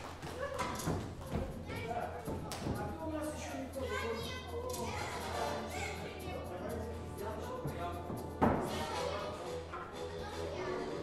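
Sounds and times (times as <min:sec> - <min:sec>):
children chattering: 0:08.8 - 0:11.0.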